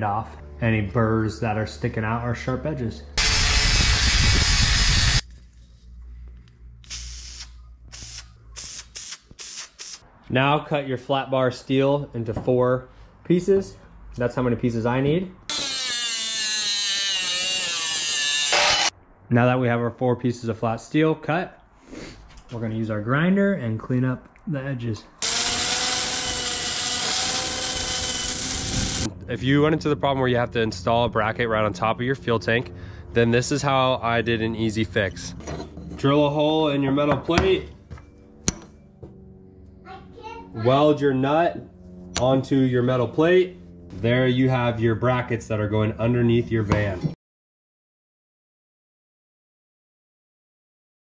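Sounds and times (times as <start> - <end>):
angle grinder grinding steel: 3.2 - 5.2, 15.5 - 18.9, 25.2 - 29.1
spray-paint can hissing: 6.8 - 10.0.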